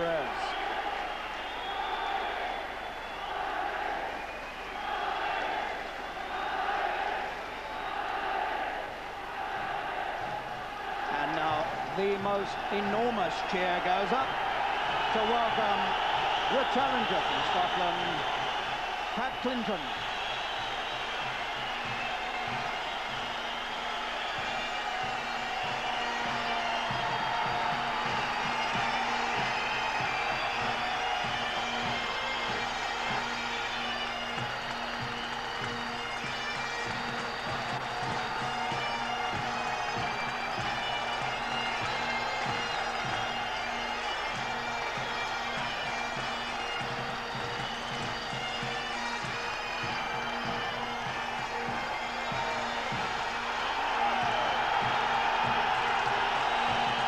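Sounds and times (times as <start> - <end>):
large crowd cheering: 0.0 - 57.0
bagpipes playing over drones: 15.0 - 57.0.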